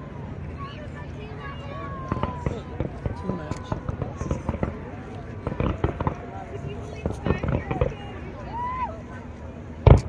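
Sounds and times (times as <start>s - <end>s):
fireworks popping and crackling: 2.0s - 8.3s.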